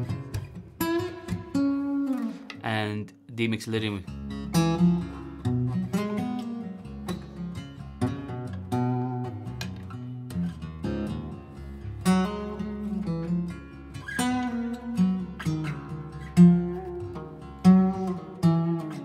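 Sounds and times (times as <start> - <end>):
acoustic guitar plucked notes: 0.0 - 19.0.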